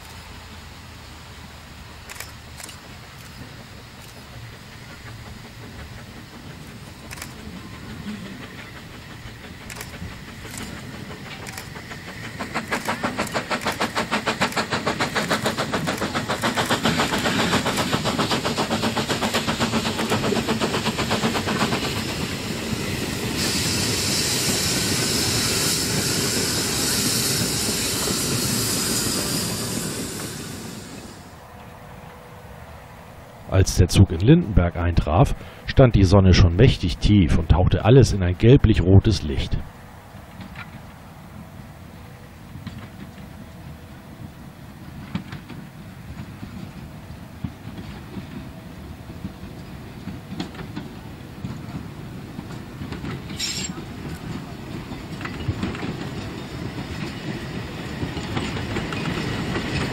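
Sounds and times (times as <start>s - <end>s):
steam locomotive chuffing: 0.0s - 31.5s, 33.6s - 59.9s
train coaches running hiss: 0.0s - 59.9s.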